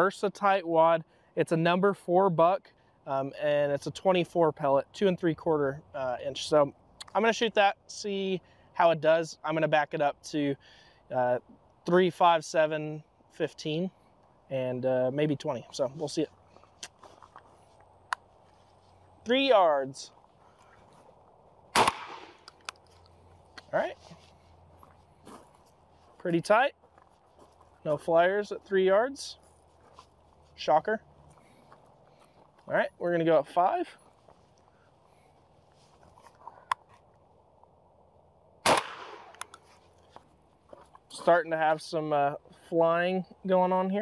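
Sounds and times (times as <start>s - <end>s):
quiet outdoor background: 0.0s - 44.0s
shotgun blast with echo: 21.7s - 22.4s, 38.6s - 39.4s.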